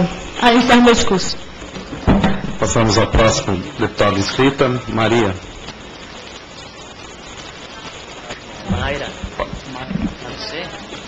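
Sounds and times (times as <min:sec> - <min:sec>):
room noise: 0:00.0 - 0:11.0.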